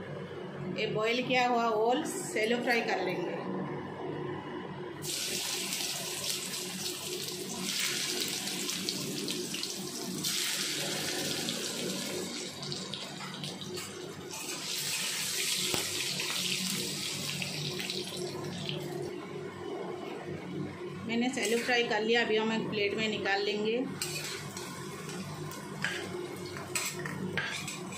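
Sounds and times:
food sizzling in hot oil: 5.0s - 18.9s, 24.0s - 26.8s
metal spatula scraping: 24.0s - 24.6s.

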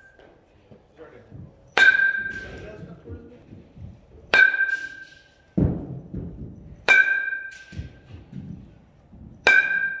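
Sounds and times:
bat hitting ball ping: 1.8s - 2.6s, 4.3s - 5.9s, 6.8s - 8.1s, 9.4s - 10.0s.

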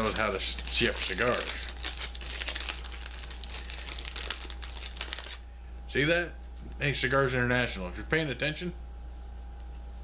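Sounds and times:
packaging crinkling: 0.0s - 5.4s.

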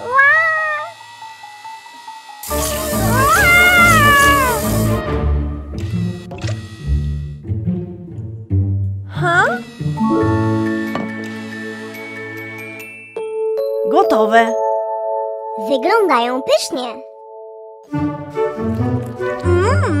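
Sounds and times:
cartoon cat meowing: 0.0s - 1.0s, 2.9s - 4.8s
light background music: 0.9s - 20.0s.

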